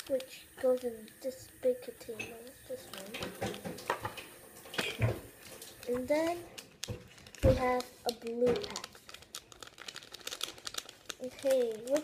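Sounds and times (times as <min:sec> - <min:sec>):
plastic packet crinkling: 0:00.0 - 0:12.0.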